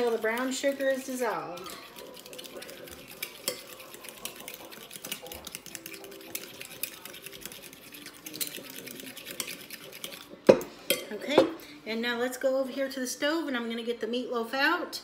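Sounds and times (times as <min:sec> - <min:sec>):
spoon stirring in glass bowl: 0:00.0 - 0:11.6.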